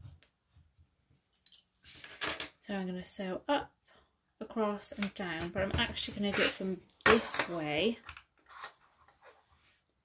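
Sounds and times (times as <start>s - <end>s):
woman speaking: 2.6s - 3.7s, 4.4s - 8.0s.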